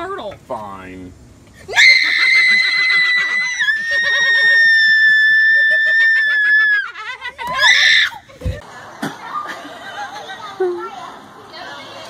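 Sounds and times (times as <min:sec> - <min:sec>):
girl screaming: 0:01.7 - 0:08.2.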